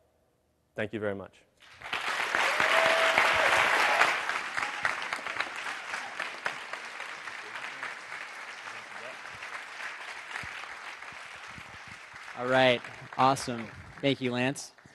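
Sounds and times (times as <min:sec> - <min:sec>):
audience applauding: 0:01.6 - 0:14.9.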